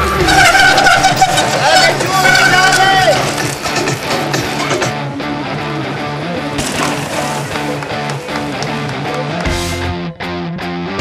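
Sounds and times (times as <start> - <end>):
rock music with guitar: 0.0 - 11.0.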